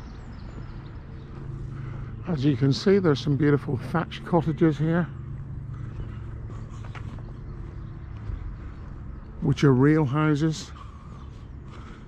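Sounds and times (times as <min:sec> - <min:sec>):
steady low rumble: 0:00.0 - 0:12.0
footsteps walking: 0:00.4 - 0:02.0, 0:05.2 - 0:09.8.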